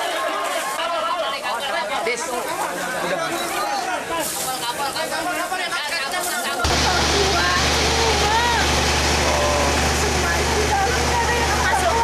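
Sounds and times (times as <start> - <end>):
water spraying from fire hoses: 6.2 - 12.0
fire engine pump hum: 6.6 - 12.0
voices calling out: 6.6 - 12.0.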